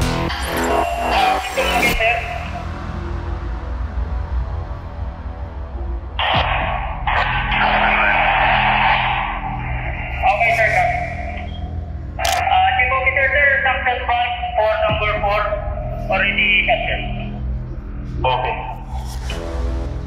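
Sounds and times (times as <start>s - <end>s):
background music: 0.0s - 20.0s
steady low drone: 0.0s - 20.0s.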